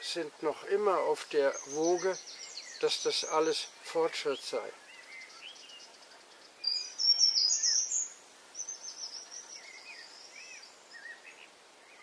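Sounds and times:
songbird singing: 0.0 - 12.0
bird twittering: 1.4 - 12.0
low bird chirps: 1.4 - 12.0.

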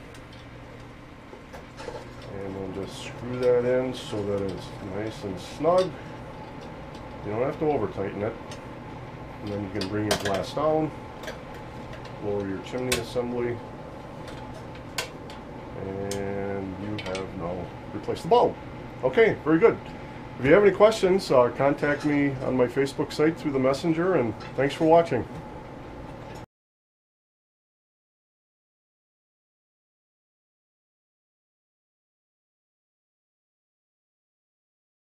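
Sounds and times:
steady low hum: 0.0 - 26.5
person speaking: 12.2 - 13.6, 15.8 - 25.4.

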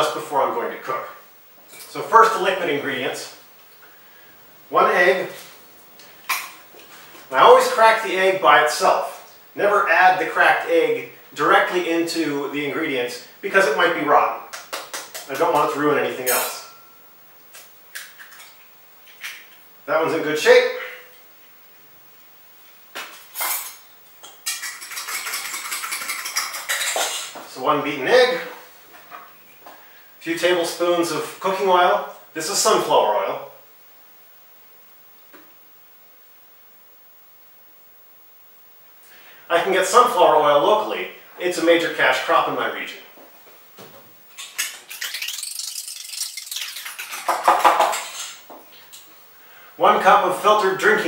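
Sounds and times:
utensil clinking in metal bowl: 23.4 - 27.3
rustling and scraping of bottle: 24.5 - 27.5.

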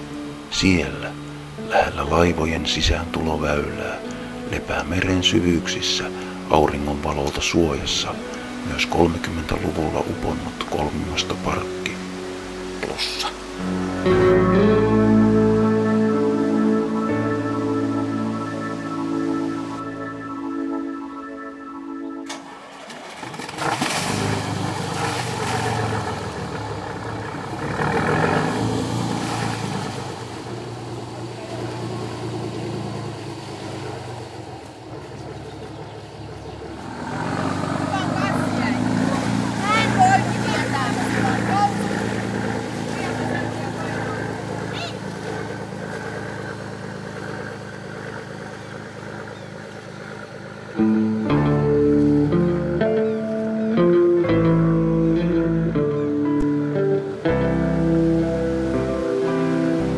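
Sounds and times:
boat engine running: 0.0 - 59.9
people's voices: 37.4 - 45.1.

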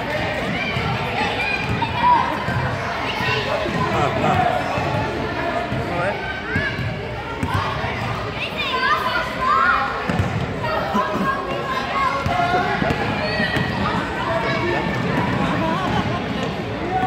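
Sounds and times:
voices calling out and chattering: 0.0 - 17.0.

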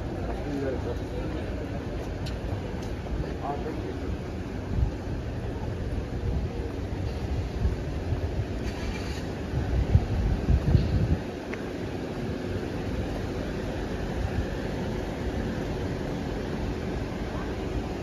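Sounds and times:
road traffic rumble: 0.0 - 18.0
wind on microphone: 7.2 - 11.4.

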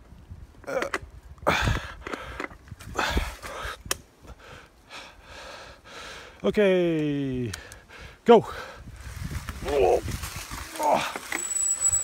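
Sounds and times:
wind noise on microphone: 0.0 - 4.7, 7.9 - 11.1
mountain bike riding rumble: 7.7 - 12.0.

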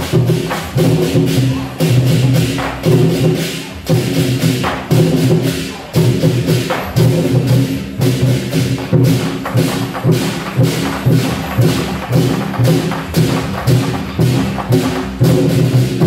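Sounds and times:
hand cymbals crashing: 0.0 - 16.0
large war drums beating: 0.0 - 16.0.

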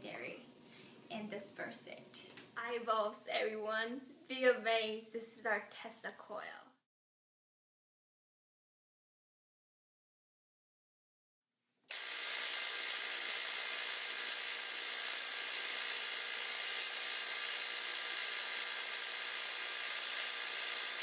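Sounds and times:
tesla coil electric buzz: 11.9 - 21.0.

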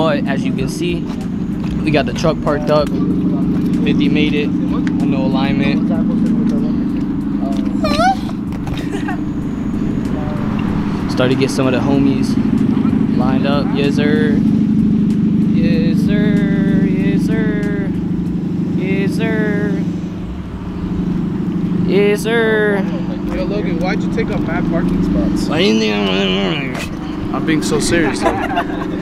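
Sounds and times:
car engine idling: 0.0 - 29.0
person calling out: 7.7 - 8.4, 15.6 - 18.0, 18.8 - 19.9, 25.5 - 26.9.

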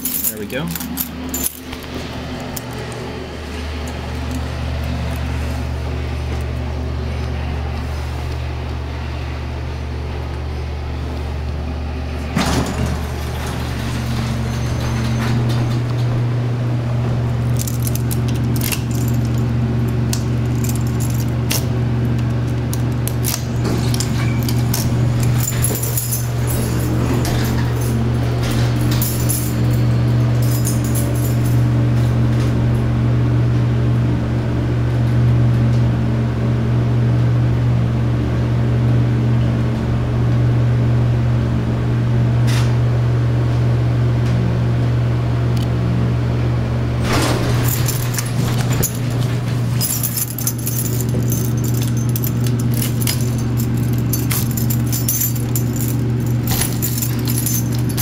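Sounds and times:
keys jangling and clicking: 0.0 - 3.1, 17.4 - 31.7, 47.1 - 58.0
elevator low hum: 0.0 - 58.0
elevator clunk: 12.3 - 16.3, 23.2 - 30.4, 47.0 - 58.0.

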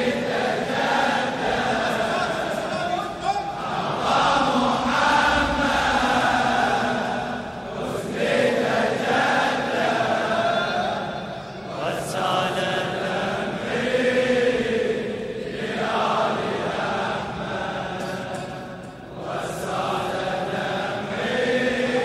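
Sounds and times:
crowd of men chanting: 0.0 - 22.0.

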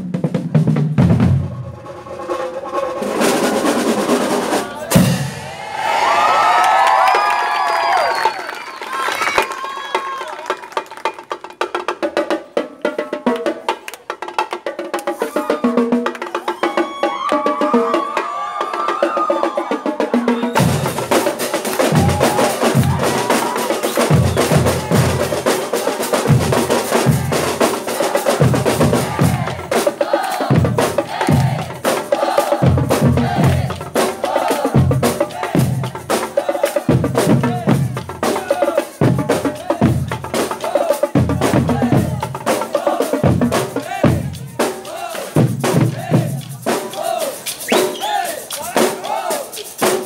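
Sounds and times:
snare drum strokes: 20.0 - 50.0
bass drum beats: 20.5 - 36.2, 36.9 - 40.5, 41.2 - 47.2.

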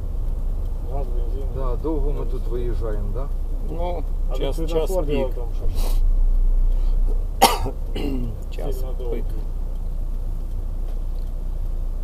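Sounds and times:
car engine rumble: 0.0 - 12.0
road noise: 0.0 - 12.0
sharp cough: 7.4 - 8.4.

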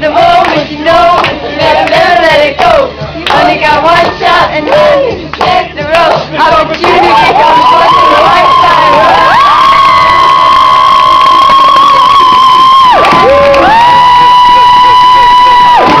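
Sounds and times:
crowd cheering and screaming: 7.0 - 16.0.

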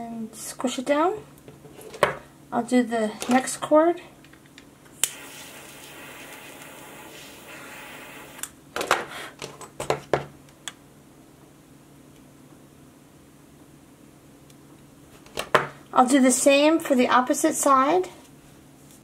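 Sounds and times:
lighter clicking: 5.0 - 8.5
lighter flame hissing: 5.0 - 8.5.

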